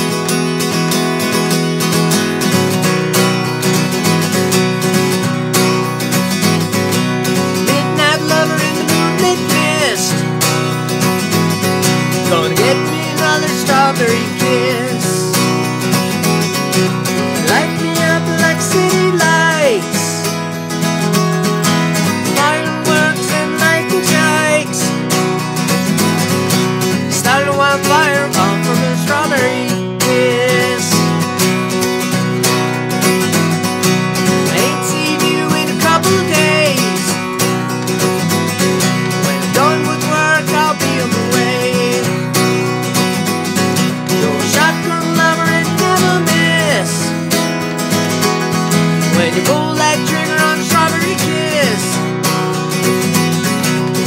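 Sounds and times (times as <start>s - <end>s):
acoustic guitar strumming: 0.0s - 54.0s
man singing: 7.4s - 10.6s, 12.0s - 15.5s, 17.2s - 20.3s, 22.2s - 25.1s, 26.9s - 31.3s, 34.4s - 37.3s, 39.4s - 42.6s, 44.1s - 47.4s, 49.0s - 52.1s.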